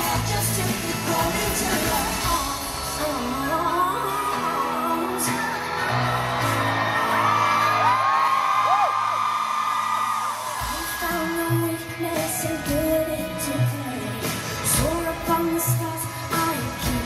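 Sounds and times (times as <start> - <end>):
woman singing lead vocal: 0.0 - 6.5, 10.6 - 17.0
live pop band: 0.0 - 17.0
crowd whooping: 2.9 - 13.0.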